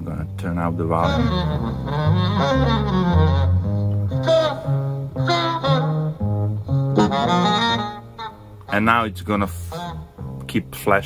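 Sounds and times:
jazz music: 0:00.0 - 0:11.0.

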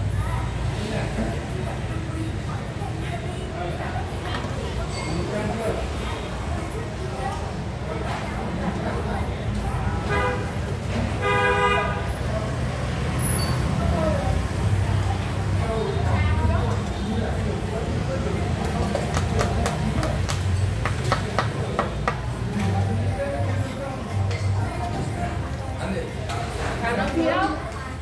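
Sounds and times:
motorbike engines passing: 0:00.0 - 0:27.0
street traffic: 0:00.0 - 0:28.0
vehicle horn tooting: 0:10.0 - 0:10.6, 0:11.2 - 0:12.1.

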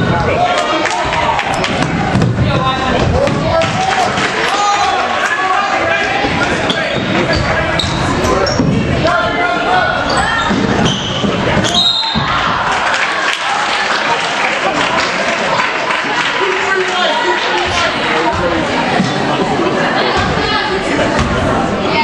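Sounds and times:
echoing voices: 0:00.0 - 0:22.0.

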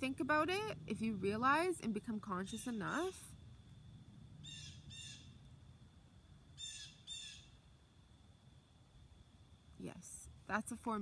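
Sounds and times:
bird calling: 0:04.4 - 0:05.4, 0:06.6 - 0:07.6.

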